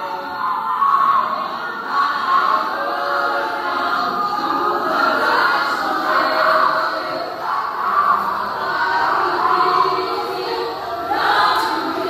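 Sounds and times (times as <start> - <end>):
women's choir singing: 0.0 - 12.0.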